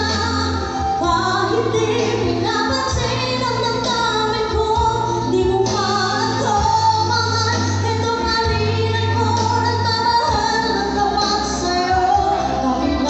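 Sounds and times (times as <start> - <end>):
woman singing a ballad: 0.0 - 13.0.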